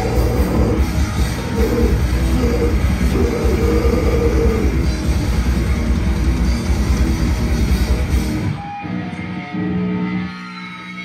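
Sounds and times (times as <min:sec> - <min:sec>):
fast drumming: 0:00.0 - 0:08.5
bass guitar: 0:00.0 - 0:11.0
distorted electric guitars: 0:00.0 - 0:11.0.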